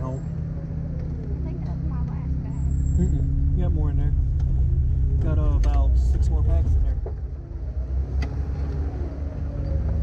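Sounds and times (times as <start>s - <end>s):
engine drone inside cab: 0.0s - 10.0s.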